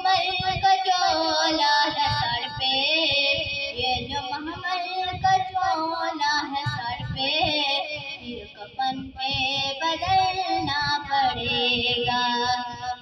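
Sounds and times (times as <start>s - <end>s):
low thumping beats: 0.0s - 13.0s.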